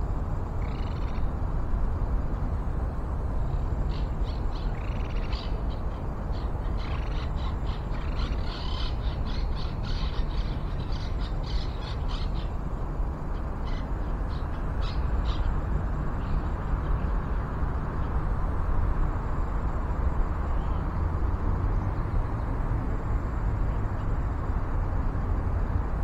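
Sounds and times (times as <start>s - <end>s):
birds calling: 3.8s - 17.1s.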